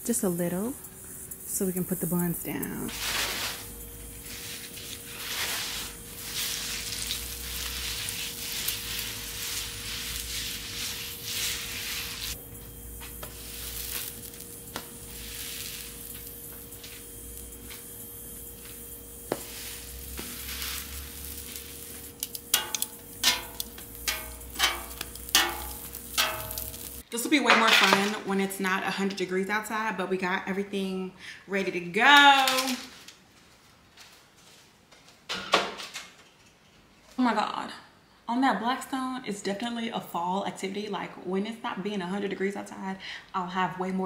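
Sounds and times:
faint steady hum: 0.0 - 27.2
grease sizzling on griddle: 0.1 - 27.1.

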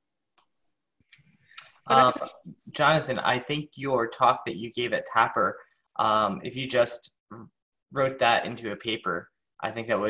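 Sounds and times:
man speaking: 1.6 - 10.0.

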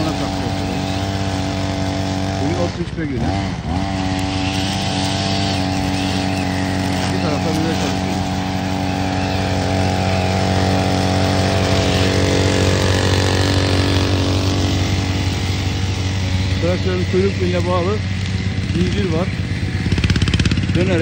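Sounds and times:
brushcutter engine cutting grass: 0.0 - 21.0.

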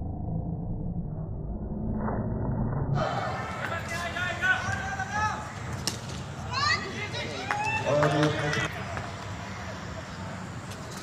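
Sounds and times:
muffled low rumble: 0.0 - 3.1
people calling out and shouting: 3.0 - 10.2.

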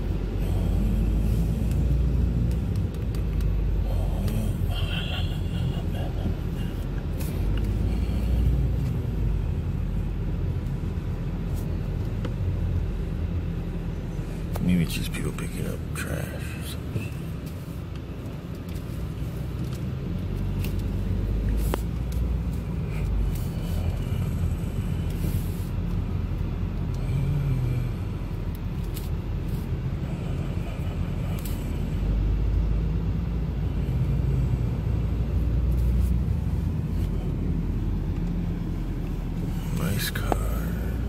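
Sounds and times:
car engine and road noise: 0.0 - 41.0.

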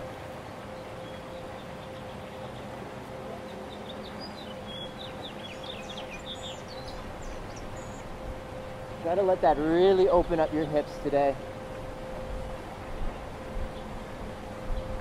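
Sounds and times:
faint continuous hum: 0.0 - 15.0
steady background noise: 0.0 - 15.0
small birds chirping: 3.5 - 8.2.

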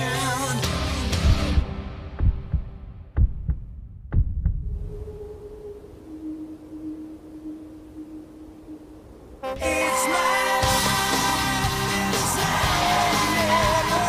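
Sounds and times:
low dull thumps: 1.2 - 5.2
faint steady hum: 4.7 - 10.6.

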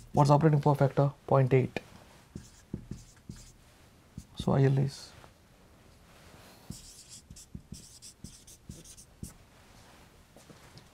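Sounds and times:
marker squeaking on whiteboard: 2.4 - 3.6, 6.7 - 9.3.

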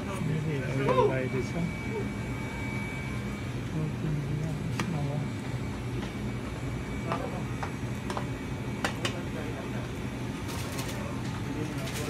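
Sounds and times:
low hum: 0.0 - 8.8.

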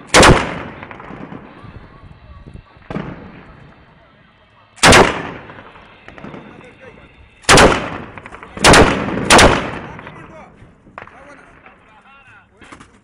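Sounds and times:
gunfire echo: 0.0 - 2.0, 2.7 - 3.9, 4.8 - 11.7.

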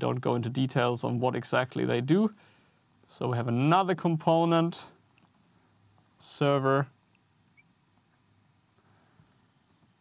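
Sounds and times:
marker squeaking on glass: 7.5 - 7.8.

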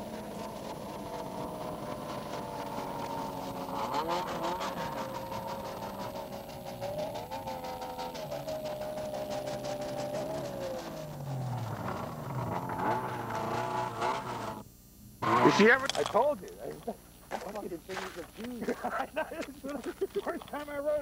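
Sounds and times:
snowmobile engine running: 0.0 - 14.6.

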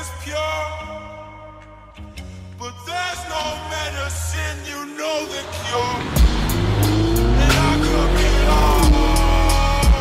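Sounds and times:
music with steady beat: 1.6 - 10.0
car engine revving: 5.0 - 10.0.

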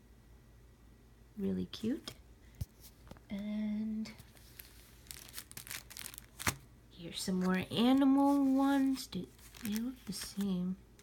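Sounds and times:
cellophane sleeves crinkling: 4.1 - 11.0.

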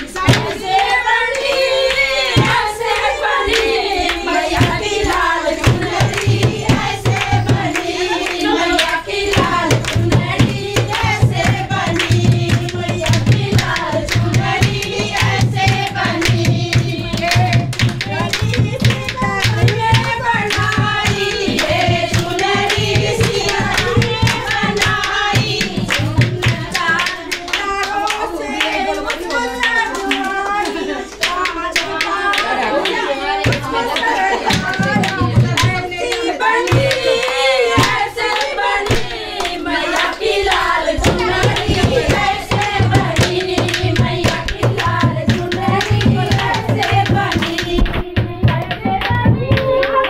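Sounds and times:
rhythmic hand clapping: 0.0 - 50.0
women singing devotional song: 0.0 - 50.0
barrel drum beats: 1.7 - 3.2, 4.2 - 27.4, 33.4 - 50.0.

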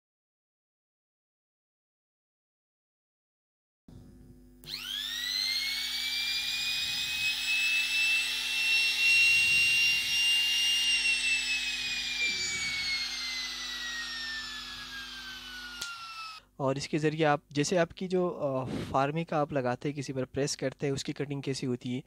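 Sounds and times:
trim router motor whining: 3.9 - 16.4.

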